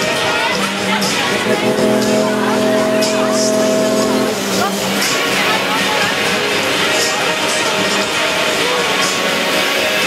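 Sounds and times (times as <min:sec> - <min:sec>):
fairground ride music: 0:00.0 - 0:10.0
steady pitched tone: 0:01.2 - 0:07.3.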